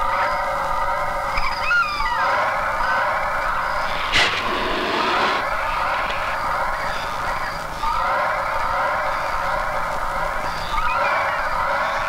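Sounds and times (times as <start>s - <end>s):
sharp whoosh hit: 3.6s - 6.5s.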